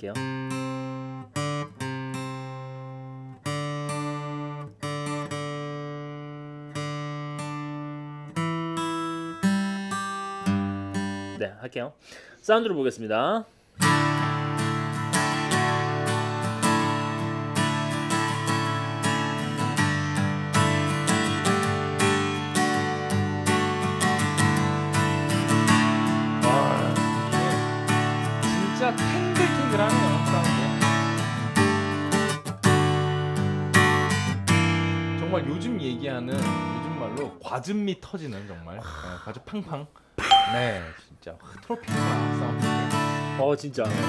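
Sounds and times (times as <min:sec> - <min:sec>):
acoustic guitar strummed chords: 0:00.2 - 0:11.4, 0:13.8 - 0:37.4, 0:41.9 - 0:44.0.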